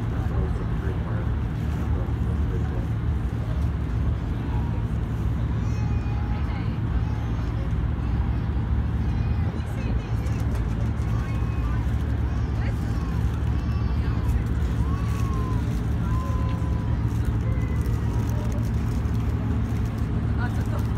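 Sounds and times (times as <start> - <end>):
faint voices: 0.0 - 20.9
low engine rumble: 0.0 - 20.9.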